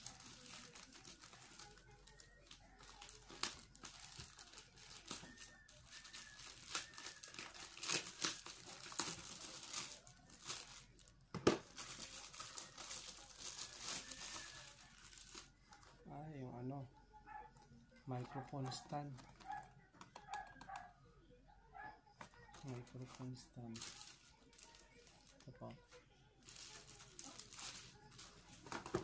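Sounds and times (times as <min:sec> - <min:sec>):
plastic packaging crinkling and tearing: 0:00.0 - 0:16.0, 0:22.5 - 0:25.8, 0:26.4 - 0:29.0.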